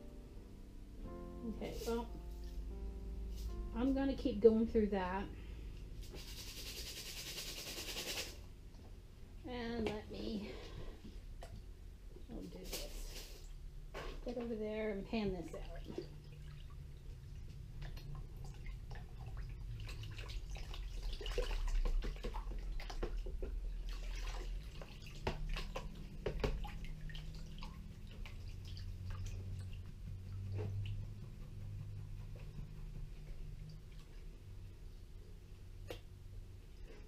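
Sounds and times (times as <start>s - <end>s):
water sloshing and splashing in tub: 12.3s - 31.3s.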